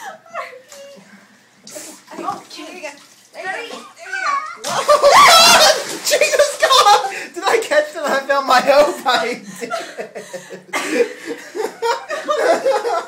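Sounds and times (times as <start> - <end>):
water splashing in a bathtub: 1.6 - 7.7
people laughing: 4.7 - 7.6, 9.0 - 13.0.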